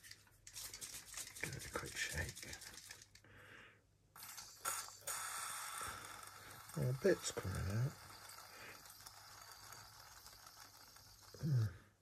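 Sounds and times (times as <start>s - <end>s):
aerosol can spraying hiss: 4.2s - 10.3s.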